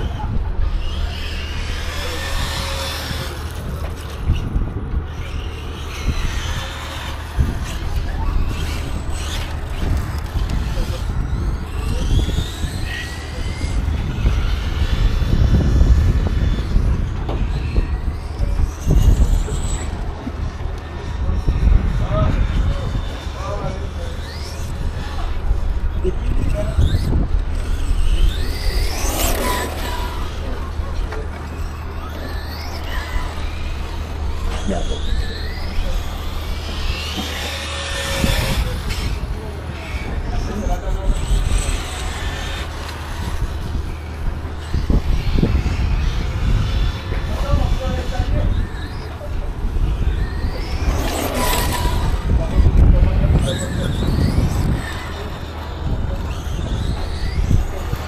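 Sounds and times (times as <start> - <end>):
electric motor whining: 0.0 - 58.0
wind rumble on microphone: 0.0 - 58.0.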